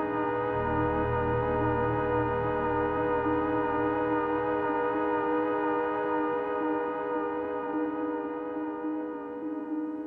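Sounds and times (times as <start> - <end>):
sustained synth chord: 0.3 - 5.0.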